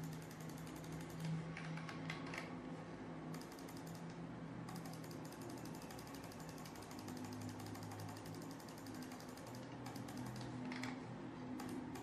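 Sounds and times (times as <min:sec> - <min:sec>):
computer mouse clicking rapidly: 0:00.0 - 0:02.6, 0:03.3 - 0:12.0.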